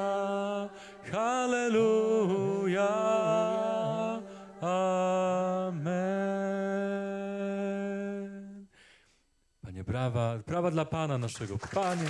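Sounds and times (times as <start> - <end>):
man singing wordless chant: 0.0 - 8.6
singer breath: 0.7 - 1.1, 4.2 - 4.6, 8.7 - 9.3.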